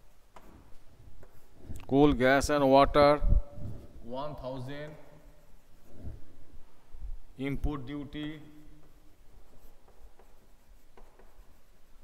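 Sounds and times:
chalk scraping on blackboard: 0:08.4 - 0:12.0.

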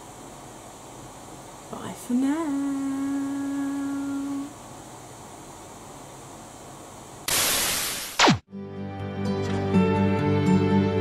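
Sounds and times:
electric desk fan hiss: 0:00.0 - 0:08.2.

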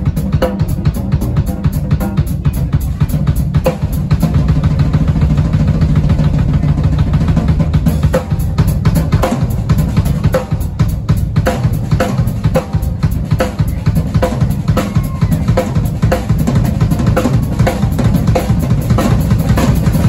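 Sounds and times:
bass line: 0:00.0 - 0:20.0
drum kit played hard: 0:00.0 - 0:20.0.

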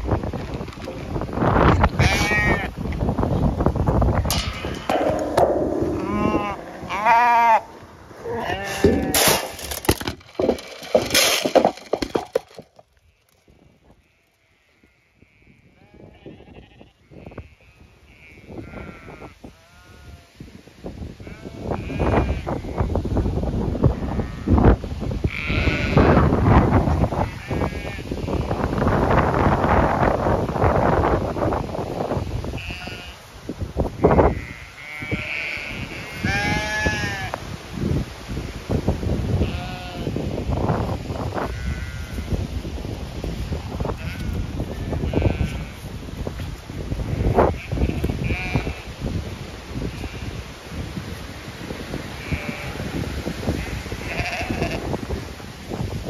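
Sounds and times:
wind buffeting microphone: 0:00.0 - 0:12.8, 0:15.2 - 0:56.0
sheep bleating: 0:02.0 - 0:02.7, 0:04.3 - 0:09.4.

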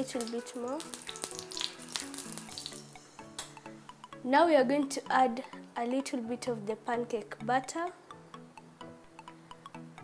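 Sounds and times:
oil sizzling in a pan: 0:00.0 - 0:03.4
background music with held notes: 0:00.0 - 0:10.0.

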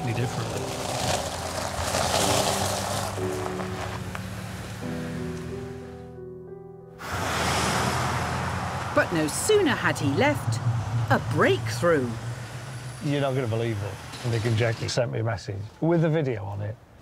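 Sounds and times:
car driving over gravel: 0:00.0 - 0:04.8
background music with held notes: 0:00.0 - 0:07.0.

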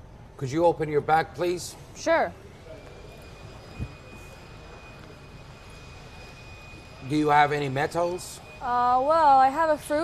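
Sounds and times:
faint high-pitched whine: 0:00.0 - 0:10.0
steady background hum: 0:00.0 - 0:10.0.

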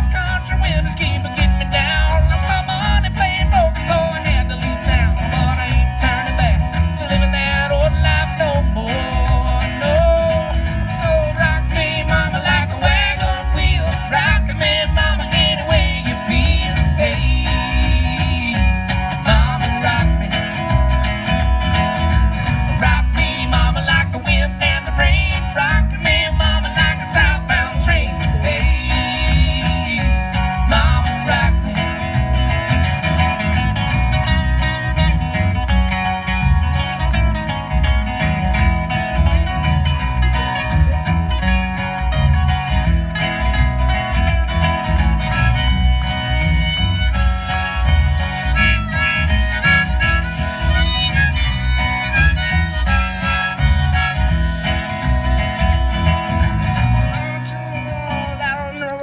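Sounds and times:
steady bass beat: 0:00.0 - 0:58.7
acoustic guitar strumming: 0:00.0 - 0:59.0
harmonica melody: 0:00.0 - 0:59.0.

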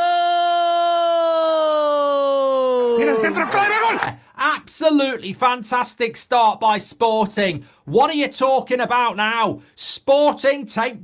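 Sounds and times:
man's long celebratory shout: 0:00.0 - 0:04.1.

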